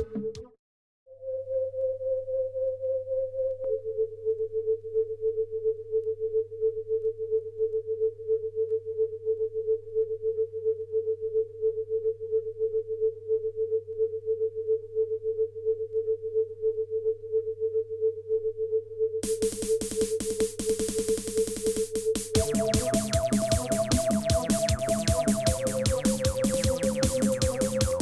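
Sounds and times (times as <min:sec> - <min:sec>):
synthesizer tone pulsing rapidly: 0:19.2 - 0:28.0.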